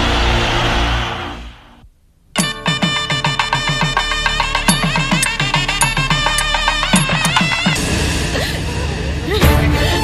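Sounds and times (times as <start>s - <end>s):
sharp pitched percussive strikes: 2.4s - 8.0s.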